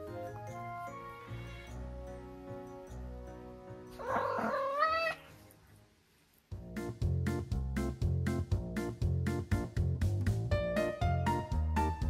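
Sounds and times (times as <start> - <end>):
soft background music: 0.0 - 12.0
cat meowing: 4.0 - 5.3.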